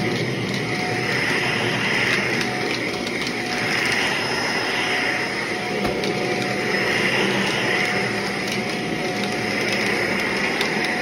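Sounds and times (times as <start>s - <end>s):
vacuum cleaner on carpet: 0.0s - 11.0s.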